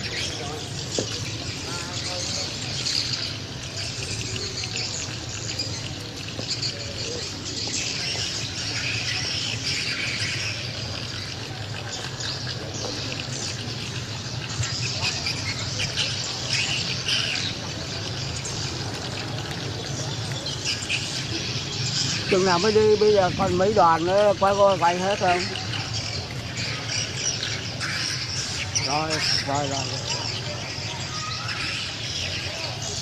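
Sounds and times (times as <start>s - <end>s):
murmur of voices: 0.0s - 33.0s
small birds chirping: 0.0s - 33.0s.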